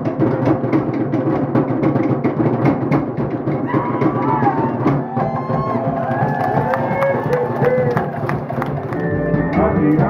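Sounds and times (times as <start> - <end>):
fast steady drumming: 0.0 - 10.0.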